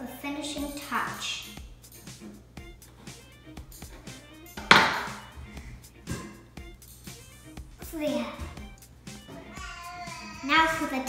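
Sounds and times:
background music with light notes: 0:00.0 - 0:11.0
knife striking chopping board: 0:04.6 - 0:05.2.

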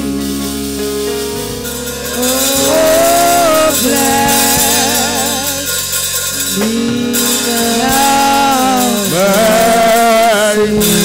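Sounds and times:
gospel singer holding a note: 0:00.0 - 0:11.0.

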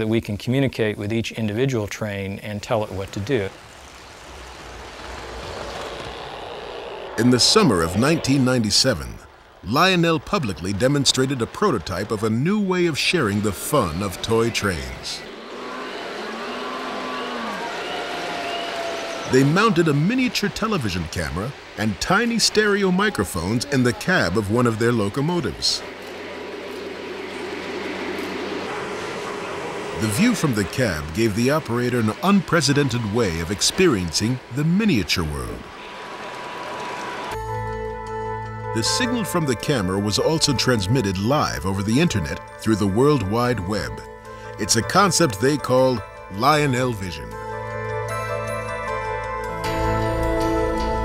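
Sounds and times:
model train rumbling on track: 0:01.9 - 0:37.4
low motor hum: 0:02.4 - 0:38.3
toy train rolling on track: 0:02.8 - 0:15.8.

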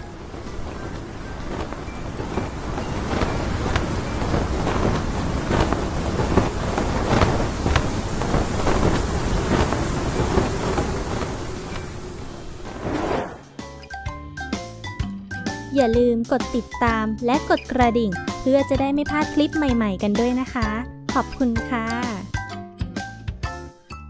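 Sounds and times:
windy rushing noise with crackles: 0:00.0 - 0:13.5.

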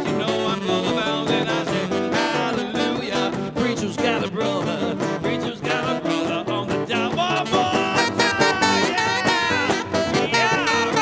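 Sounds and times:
acoustic guitar strumming swing: 0:00.0 - 0:11.0
saxophone sliding notes: 0:05.9 - 0:11.0.

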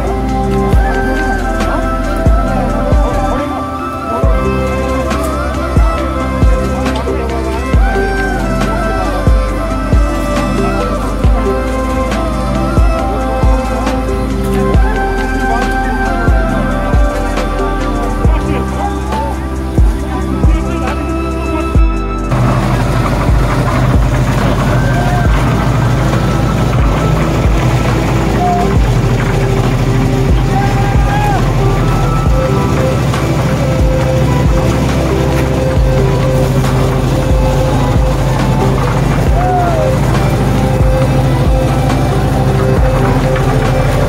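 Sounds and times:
background music: 0:00.0 - 0:44.0
concrete mixer engine running: 0:00.0 - 0:44.0
voices: 0:00.0 - 0:44.0.

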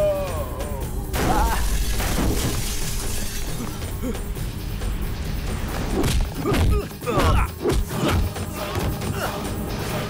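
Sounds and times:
action background music: 0:00.0 - 0:10.0
glass shattering: 0:01.2 - 0:03.6.

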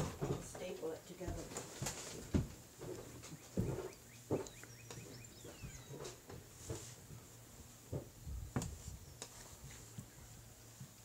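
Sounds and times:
faint high chirps: 0:03.4 - 0:06.1
thumps and rustles of clothing: 0:05.4 - 0:07.3, 0:07.9 - 0:10.1.

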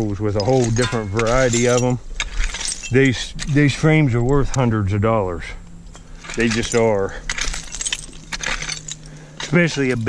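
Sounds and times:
digging tool scraping soil and glass: 0:00.0 - 0:03.7, 0:06.0 - 0:10.0.

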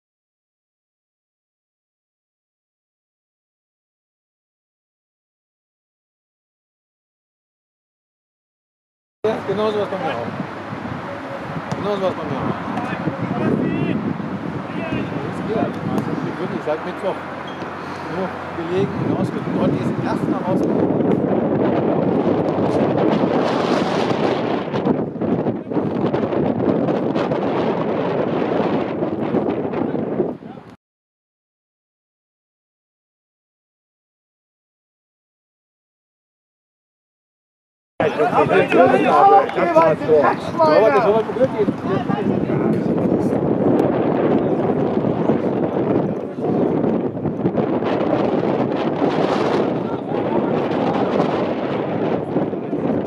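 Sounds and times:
wind buffeting microphone: 0:09.3 - 0:30.8, 0:38.0 - 0:53.0.

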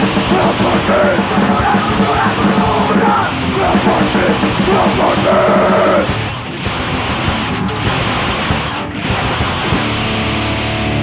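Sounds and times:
hardcore punk music: 0:00.0 - 0:11.0
shouted vocals: 0:00.1 - 0:06.1.

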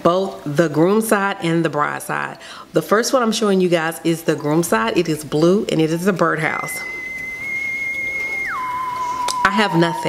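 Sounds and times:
electronic tone sliding down: 0:06.8 - 0:10.0.

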